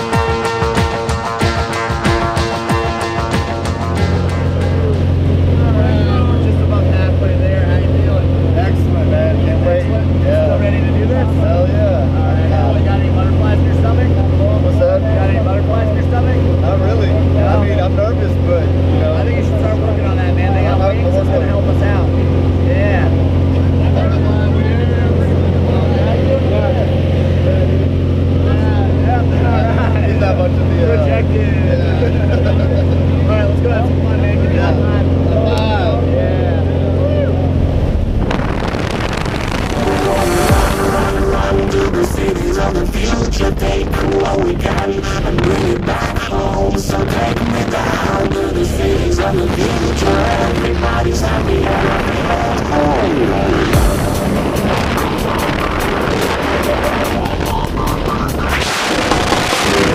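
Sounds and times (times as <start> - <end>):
propeller plane engine droning: 0.0 - 59.9.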